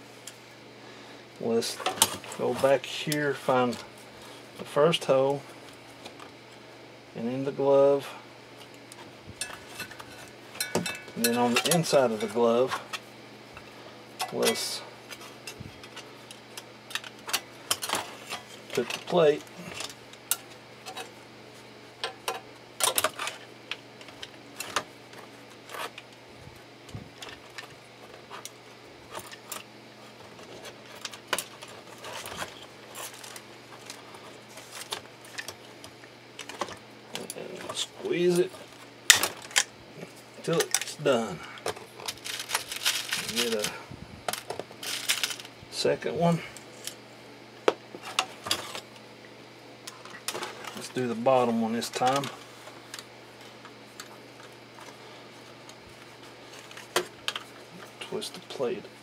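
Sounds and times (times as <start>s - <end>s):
steady low hum: 0.0s - 59.0s
small metal parts clinking: 42.0s - 45.5s.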